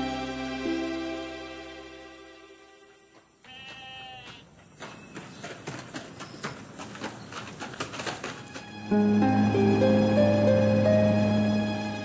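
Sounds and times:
horse hooves clopping on stone: 0:03.0 - 0:08.9
sheep bleating: 0:03.4 - 0:04.5.

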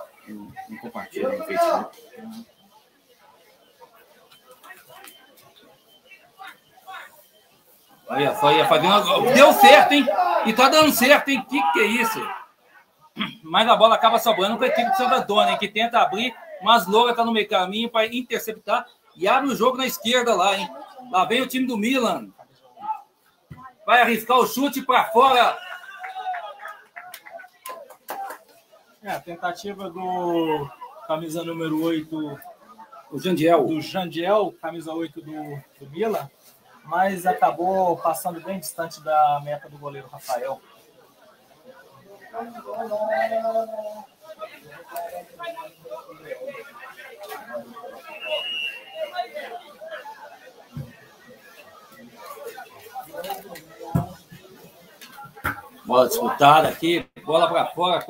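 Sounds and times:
faint voices: 0:00.0 - 0:58.0.

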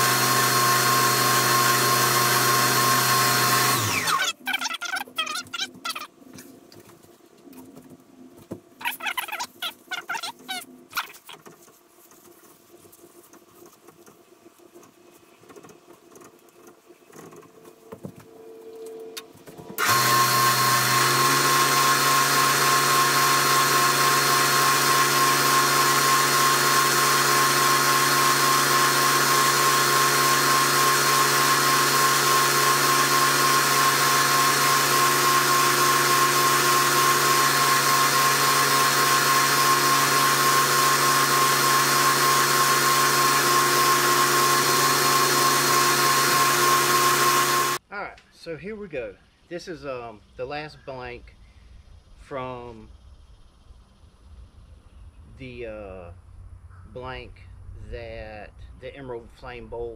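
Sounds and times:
lathe motor hum and whine: 0:00.0 - 0:04.3, 0:19.8 - 0:47.8.

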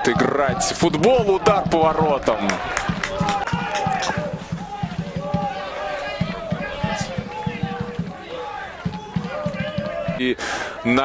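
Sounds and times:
low thumps: 0:00.0 - 0:10.3
people calling out: 0:00.0 - 0:11.0.

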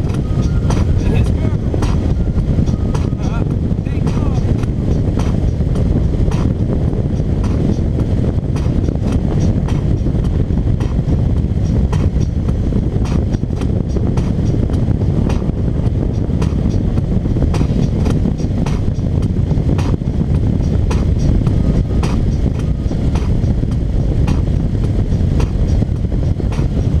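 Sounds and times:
wind rumble on microphone: 0:00.0 - 0:27.0.

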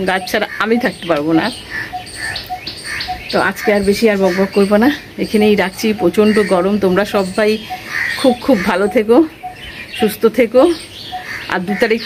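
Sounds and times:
woman's voice: 0:00.0 - 0:01.6, 0:03.2 - 0:12.0
small birds chirping: 0:00.0 - 0:12.0.

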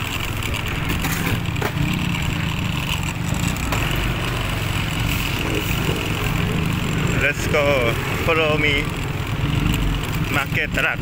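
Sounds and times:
small vehicle engine running: 0:00.0 - 0:11.0.

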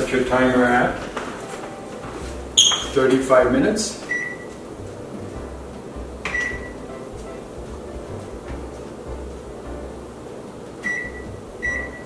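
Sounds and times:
short high microwave beep: 0:04.1 - 0:04.5, 0:06.3 - 0:06.8, 0:10.8 - 0:12.0.

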